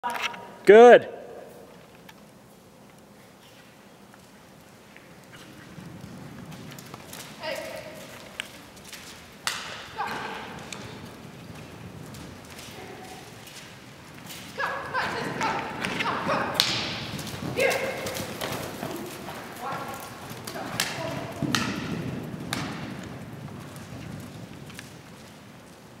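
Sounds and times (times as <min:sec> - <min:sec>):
horse hoofbeats on soft dirt: 0:02.2 - 0:26.0.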